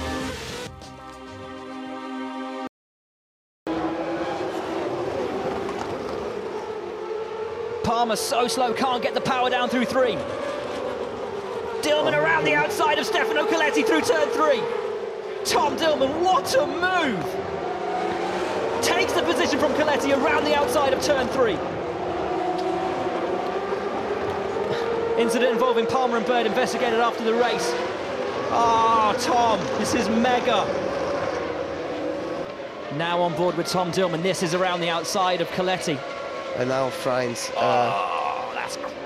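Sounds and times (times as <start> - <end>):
race car engines at high revs: 3.7 - 39.0.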